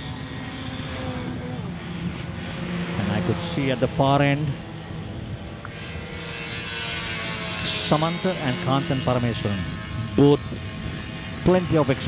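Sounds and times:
race car engines droning: 0:00.0 - 0:12.0.

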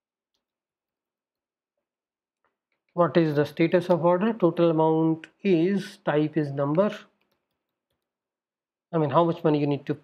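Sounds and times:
person speaking: 0:02.9 - 0:07.2.

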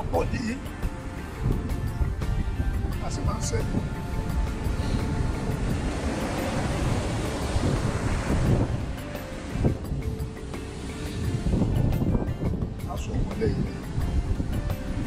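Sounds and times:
background music: 0:00.0 - 0:15.0
surf washing on beach: 0:00.0 - 0:15.0
wind buffeting microphone: 0:00.0 - 0:15.0.

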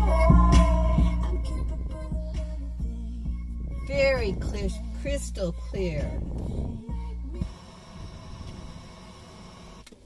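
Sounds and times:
music through car speakers: 0:00.0 - 0:09.8.

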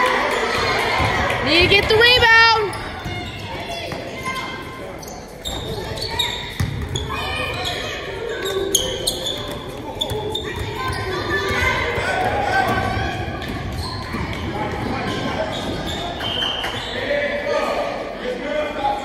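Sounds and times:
basketball bouncing: 0:00.9 - 0:04.1, 0:06.5 - 0:07.2
sneakers squeaking on hardwood: 0:01.0 - 0:11.8, 0:12.7 - 0:17.0.

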